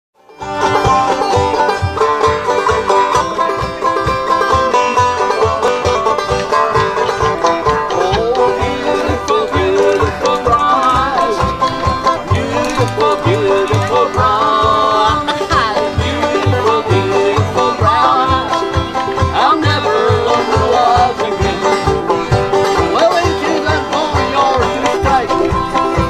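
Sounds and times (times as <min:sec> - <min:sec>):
acoustic guitar: 0:00.2 - 0:26.0
banjo picking: 0:00.2 - 0:26.0
harmonica with bending notes: 0:00.3 - 0:26.0
plucked tea-chest bass thump: 0:00.4 - 0:26.0.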